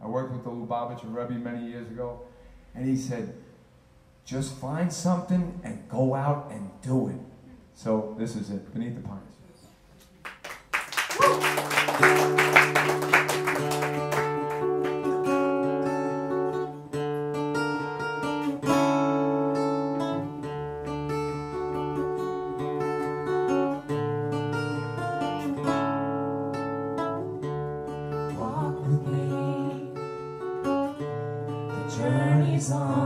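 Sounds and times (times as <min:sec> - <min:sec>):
acoustic guitar plucked notes: 0:11.6 - 0:33.0.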